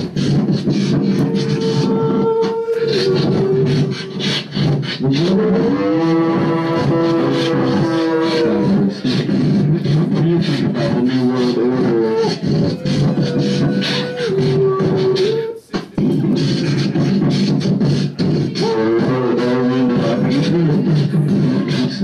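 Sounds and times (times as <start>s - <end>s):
beatboxing through amplifier: 0.0s - 22.0s
held pitched vocal notes: 0.0s - 22.0s.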